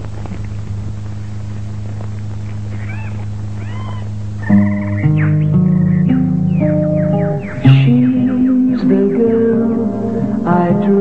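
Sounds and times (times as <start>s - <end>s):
steady low hum: 0.0s - 11.0s
animal calls: 2.7s - 9.3s.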